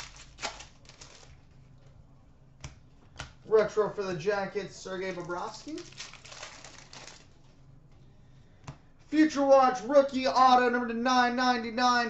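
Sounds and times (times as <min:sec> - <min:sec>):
cards being handled: 0:00.0 - 0:01.6, 0:05.0 - 0:08.0.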